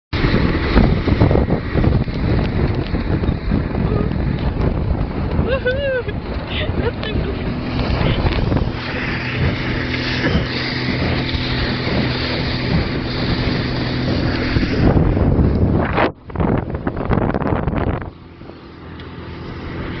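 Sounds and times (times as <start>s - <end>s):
outboard motor running: 0.1s - 20.0s
wake rushing: 0.1s - 20.0s
wind buffeting microphone: 0.1s - 20.0s.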